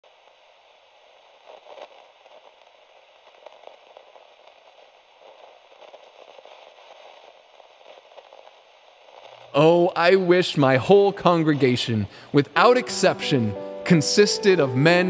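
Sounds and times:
crackling static hiss: 0.0s - 15.0s.

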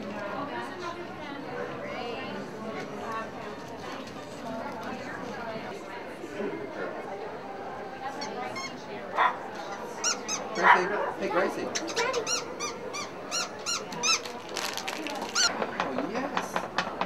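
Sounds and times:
squeaky toy squeaking: 8.2s - 8.8s, 10.0s - 10.8s, 11.7s - 14.4s, 15.3s - 15.5s.

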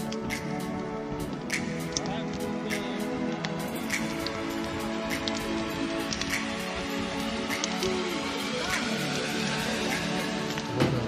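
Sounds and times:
background music with held tones: 0.0s - 11.0s
campfire crackling and popping: 0.0s - 11.0s.

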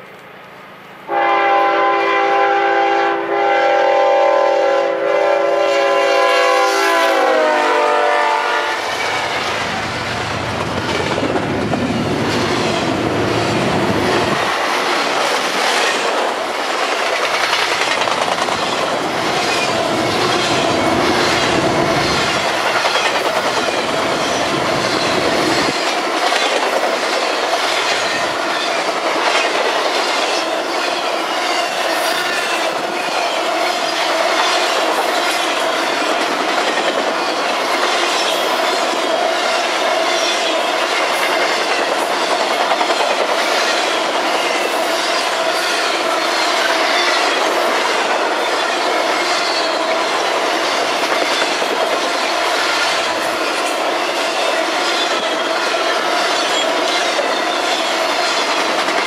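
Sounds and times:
freight train wheels rolling on rails: 5.2s - 59.0s.

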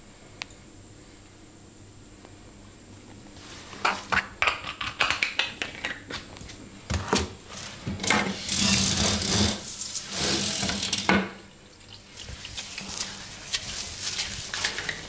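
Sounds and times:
cream rubbed on head: 12.1s - 14.9s.

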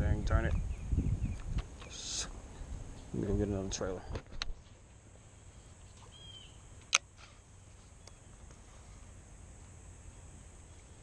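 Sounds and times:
thin bird chirp: 5.8s - 6.7s.

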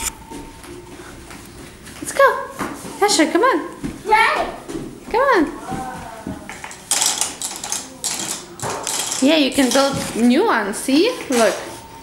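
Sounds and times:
plastic toy gears clattering: 6.6s - 10.2s.

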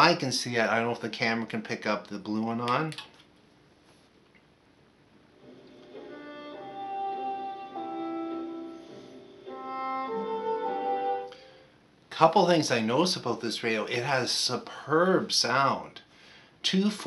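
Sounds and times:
classical music through radio: 5.4s - 11.4s.

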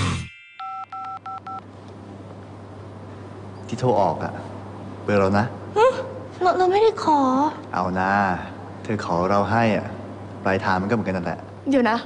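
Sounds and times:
telephone keypad tones: 0.6s - 1.6s.

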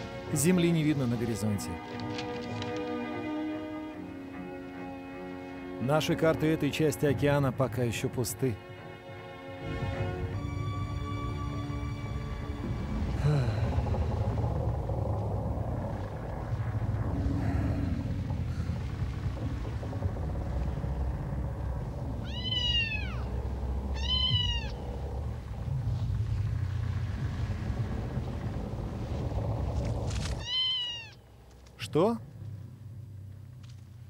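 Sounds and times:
low steady rumble: 9.6s - 34.0s
cartoon kitten meowing: 22.2s - 23.3s, 24.0s - 24.8s, 30.4s - 31.2s.

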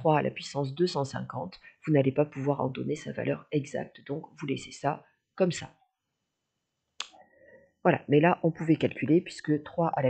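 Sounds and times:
person speaking: 0.0s - 5.7s, 7.9s - 10.0s
faint low noise: 0.0s - 10.0s.

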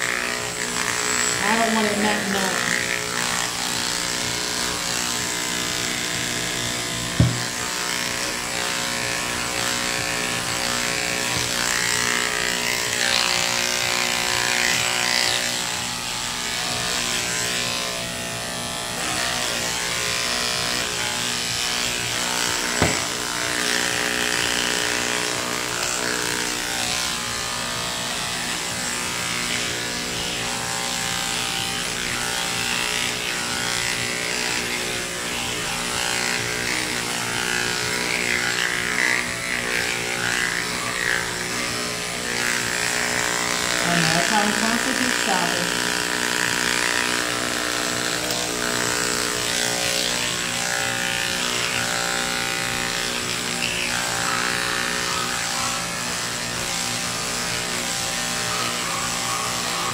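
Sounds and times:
electric clipper motor buzz: 0.0s - 59.9s.

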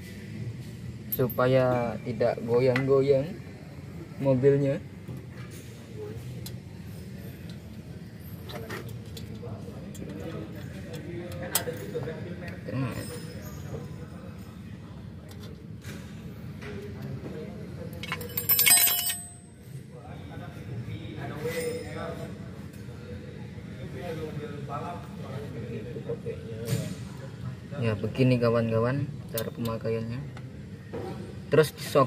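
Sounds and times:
metal springs clicking and clinking: 18.0s - 19.3s.

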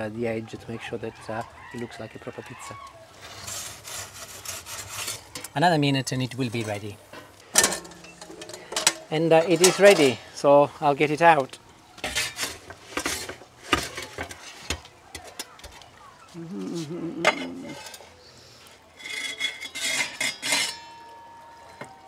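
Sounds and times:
metal peel scraping and clinking: 3.2s - 10.5s, 12.0s - 15.7s, 17.2s - 21.9s.

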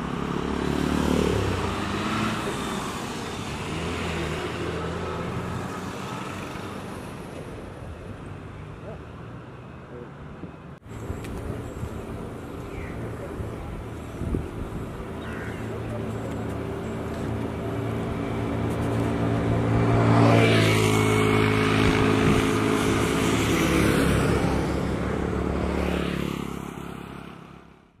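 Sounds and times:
motorbike engines humming: 0.0s - 10.2s, 10.8s - 27.5s.

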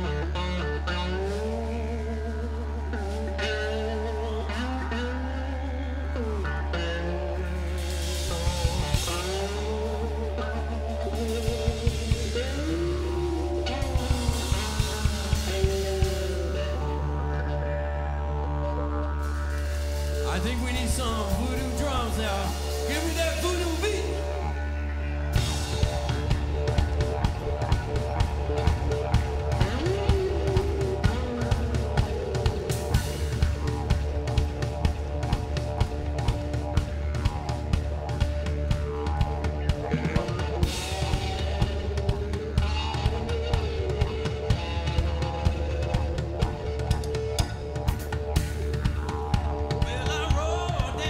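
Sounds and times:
guitar holding long notes: 0.0s - 51.0s
rock band playing: 0.0s - 51.0s
drum kit beat: 7.7s - 16.8s, 19.2s - 24.5s, 25.3s - 51.0s.

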